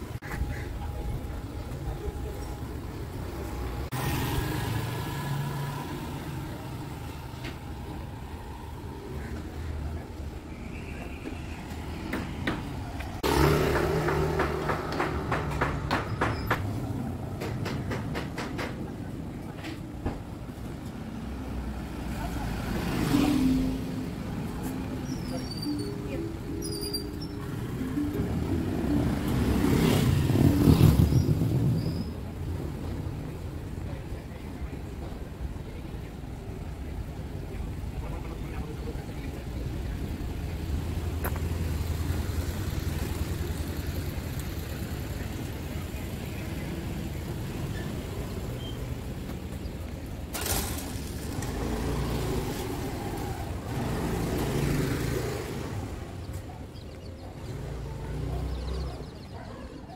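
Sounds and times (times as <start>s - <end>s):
motor vehicle passing: 3.4s - 10.4s, 11.6s - 19.1s, 20.6s - 33.8s, 40.0s - 56.6s.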